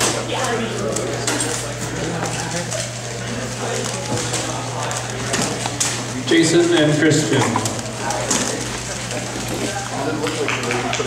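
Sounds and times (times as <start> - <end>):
indistinct voices chattering: 0.0 - 11.0.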